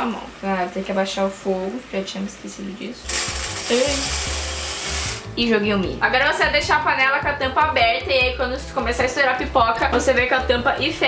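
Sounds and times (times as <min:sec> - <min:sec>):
popcorn kernels rattling into metal pot: 0:03.1 - 0:05.3.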